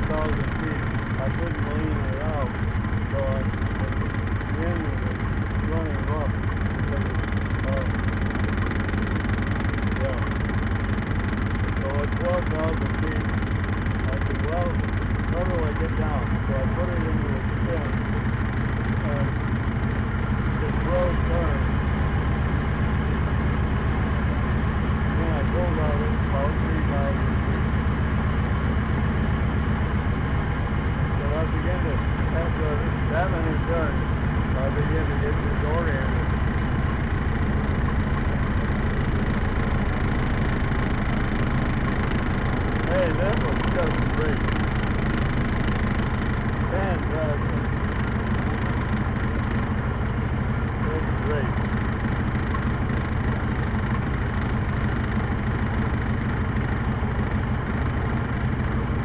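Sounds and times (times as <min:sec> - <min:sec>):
piston aircraft engine running: 0:00.0 - 0:59.0.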